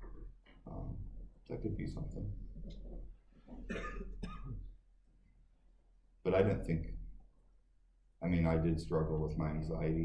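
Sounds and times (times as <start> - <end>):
person coughing: 3.6 - 4.8.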